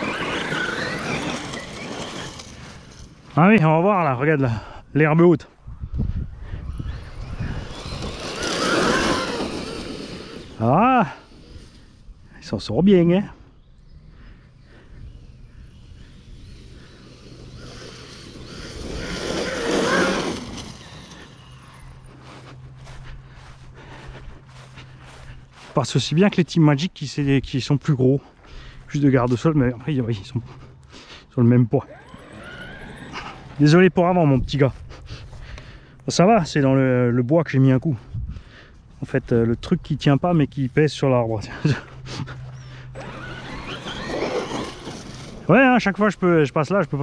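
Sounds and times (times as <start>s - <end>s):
toy truck motor whining: 0.0s - 3.6s, 6.5s - 12.3s, 13.5s - 22.8s, 30.5s - 34.0s, 41.6s - 47.0s
tyres on grass: 0.0s - 4.2s, 6.6s - 47.0s.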